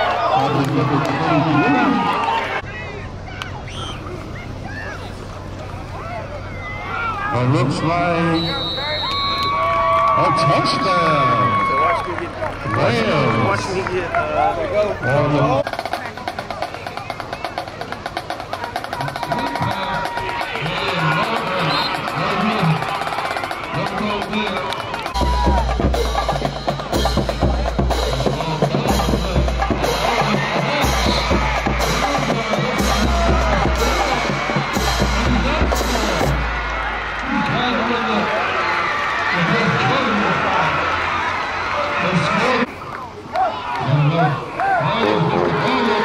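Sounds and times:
voices: 0.0s - 46.0s
bass drums beating: 15.6s - 37.6s.

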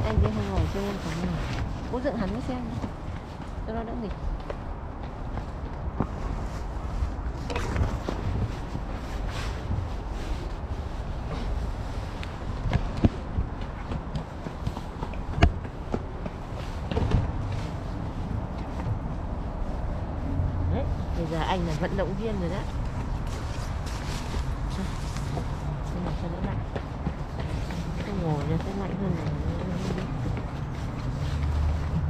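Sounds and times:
fabric rustling against microphone: 0.0s - 32.0s.

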